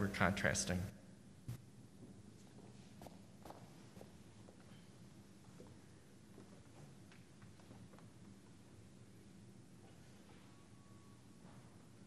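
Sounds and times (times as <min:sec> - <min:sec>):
faint footsteps: 0:01.5 - 0:08.8.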